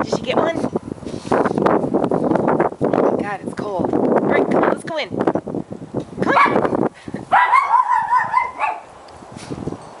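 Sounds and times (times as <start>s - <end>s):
dog high wavering whine: 7.3s - 9.0s.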